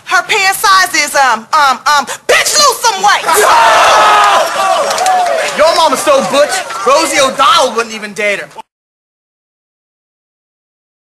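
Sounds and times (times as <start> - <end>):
crowd shouting and whooping: 3.2 - 7.8.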